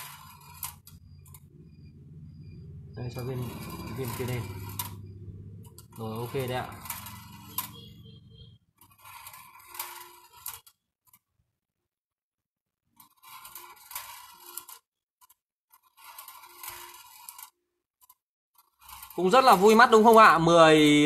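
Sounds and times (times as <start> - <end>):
marbles rolling on wire track: 0.0 - 11.2, 13.0 - 21.0.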